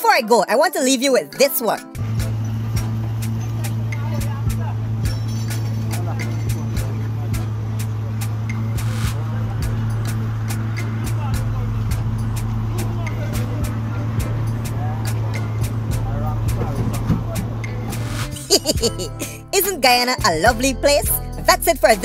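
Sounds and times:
vehicle engine idling: 2.0s - 18.0s.

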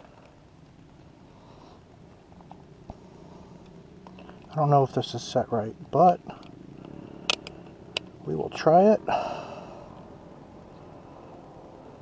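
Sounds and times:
multimeter probe clicks: 6.0s - 8.1s.

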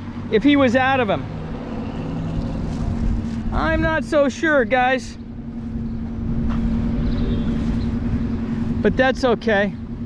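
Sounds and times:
constant low hum: 0.0s - 10.0s
road traffic rumble: 0.0s - 10.0s.

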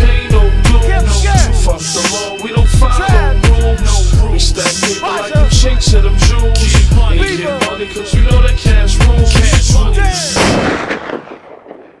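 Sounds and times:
hip-hop beat: 0.0s - 10.5s.

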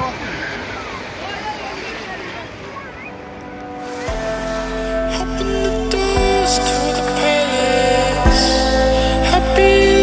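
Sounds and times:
sea surf: 0.0s - 5.6s
faint voices: 0.0s - 10.0s
steady musical tones: 3.1s - 10.0s.

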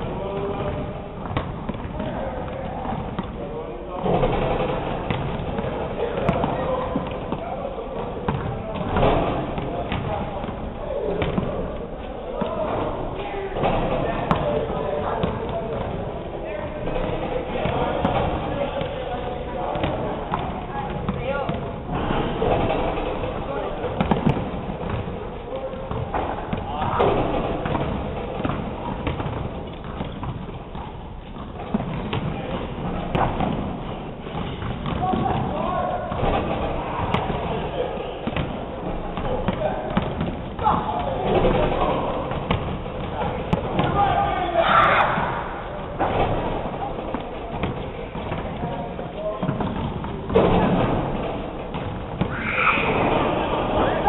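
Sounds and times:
basketball bouncing on gym floor: 0.0s - 54.0s
loud bangs of basketball shots: 0.0s - 54.0s.

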